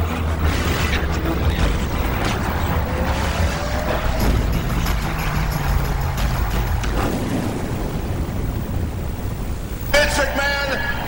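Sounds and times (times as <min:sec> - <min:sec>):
explosion-like rumble: 0:00.3 - 0:09.9.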